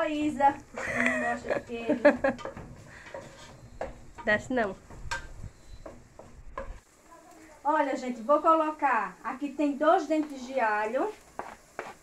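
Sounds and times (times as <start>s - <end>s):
utensil knocking and scraping pan: 1.6s - 6.8s.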